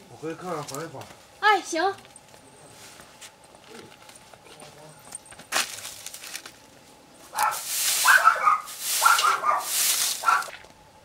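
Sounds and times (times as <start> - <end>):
broom sweeping dirt: 7.2 - 10.6.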